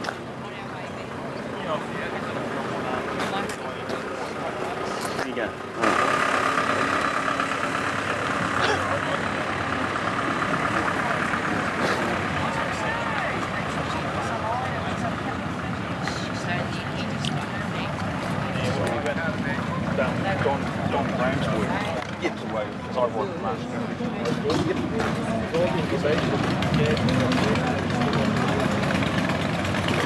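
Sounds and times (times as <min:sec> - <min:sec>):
crowd chatter: 0:00.0 - 0:30.0
vehicle engine idling: 0:00.0 - 0:30.0.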